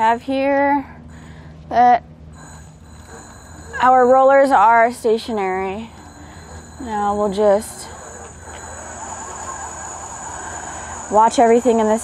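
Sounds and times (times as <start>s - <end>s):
electric motors whirring: 2.4s - 12.0s.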